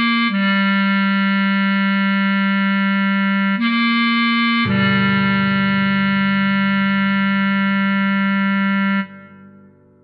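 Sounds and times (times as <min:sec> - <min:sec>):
bass clarinet long tone: 0:00.0 - 0:10.0.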